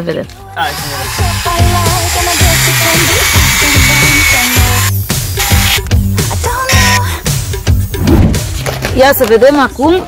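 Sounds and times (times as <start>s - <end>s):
cordless drill whirring in soil: 0.6s - 5.8s
loud music with a beat: 0.6s - 8.6s.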